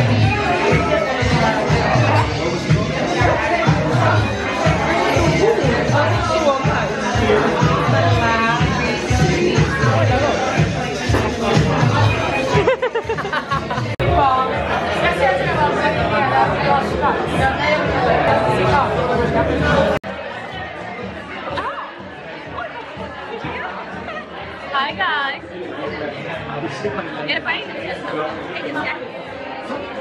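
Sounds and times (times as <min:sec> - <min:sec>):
background music: 0:00.0 - 0:30.0
overlapping chatter of a group: 0:00.0 - 0:30.0
people chatting and laughing: 0:00.0 - 0:30.0.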